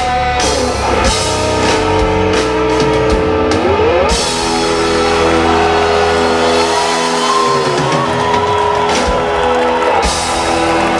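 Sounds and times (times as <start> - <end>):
drums and cymbal hits: 0.0 - 10.9.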